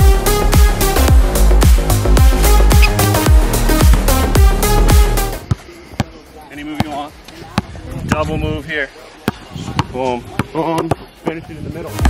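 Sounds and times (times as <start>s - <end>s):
basketball bouncing on outdoor court: 5.4s - 8.5s, 9.2s - 11.3s.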